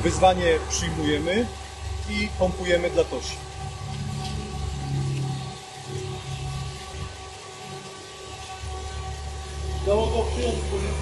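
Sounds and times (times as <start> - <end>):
faint steady tones: 0.0 - 11.0.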